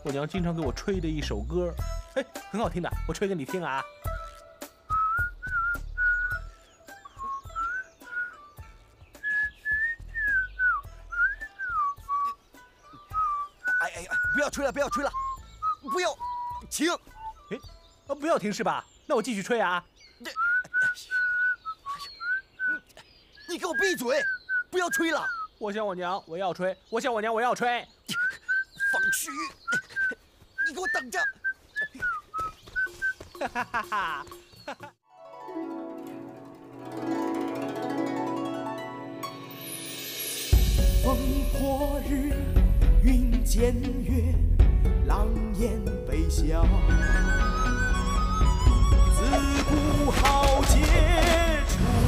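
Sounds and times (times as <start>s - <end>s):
background music: 0.0s - 18.4s, 35.1s - 52.0s
man whistling a tune: 4.9s - 8.6s, 9.2s - 17.7s, 20.3s - 22.9s, 23.7s - 25.5s, 28.1s - 33.2s, 46.8s - 50.9s.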